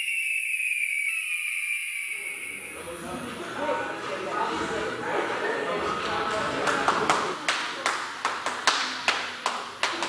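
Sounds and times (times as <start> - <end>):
person clapping hands: 6.3 - 10.0.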